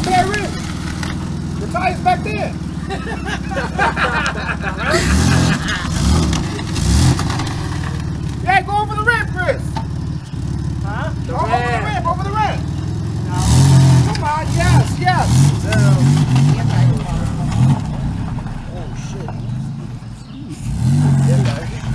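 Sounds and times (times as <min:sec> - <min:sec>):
people shouting and laughing: 0:00.0 - 0:00.7, 0:01.6 - 0:07.2, 0:10.9 - 0:19.8
van engine revving: 0:00.0 - 0:21.9.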